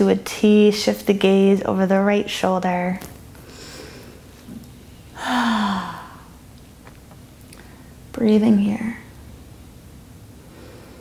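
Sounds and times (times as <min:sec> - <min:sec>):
woman sighing: 0:05.2 - 0:06.3.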